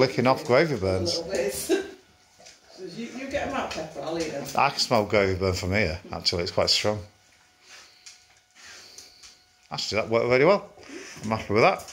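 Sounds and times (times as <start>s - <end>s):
dogs sniffing the floor: 7.2s - 9.8s.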